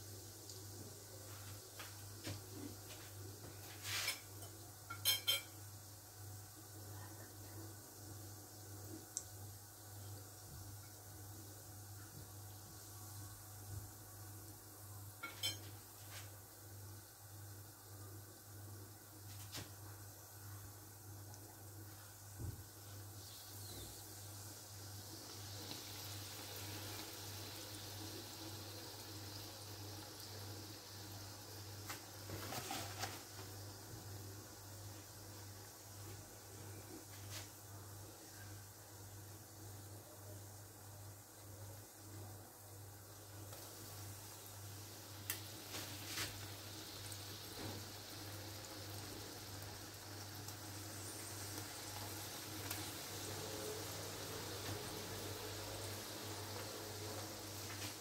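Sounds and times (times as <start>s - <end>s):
doughnuts sizzling in hot oil: 0.0s - 58.0s.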